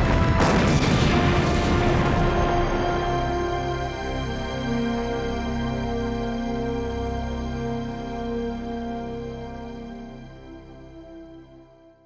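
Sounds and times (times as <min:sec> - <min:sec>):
explosion booms rumbling: 0:00.0 - 0:04.0
dramatic film score: 0:00.0 - 0:12.0.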